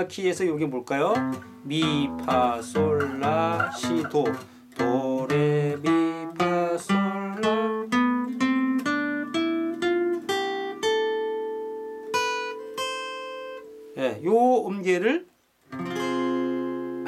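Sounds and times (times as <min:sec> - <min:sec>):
fingerpicked acoustic guitar scale: 0:00.0 - 0:17.0.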